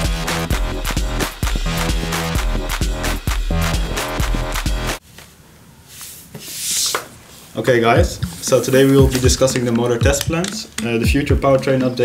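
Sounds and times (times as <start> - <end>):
whoosh hiss: 8.2 - 9.4.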